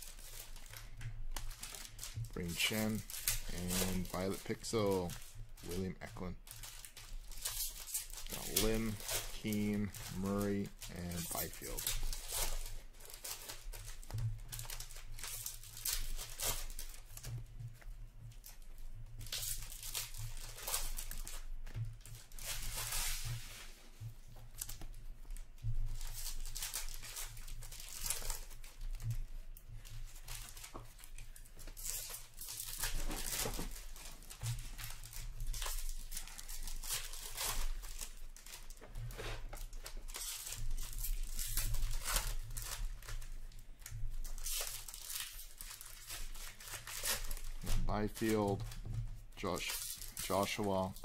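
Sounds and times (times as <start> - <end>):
card packs torn and crinkled: 0.0 - 51.0
cards rustling: 0.0 - 51.0.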